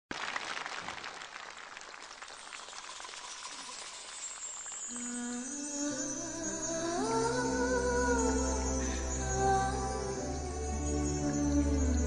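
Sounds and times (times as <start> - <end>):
audience applauding: 0.1 - 4.8.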